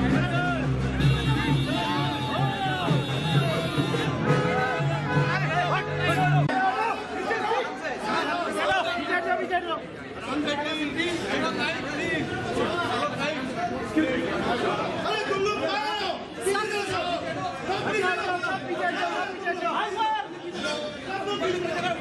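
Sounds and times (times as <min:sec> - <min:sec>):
crowd talking and calling out: 0:00.0 - 0:22.0.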